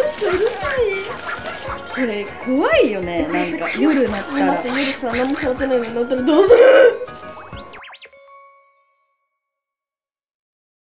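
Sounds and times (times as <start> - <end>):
faint chime ringing: 6.3 - 9.8.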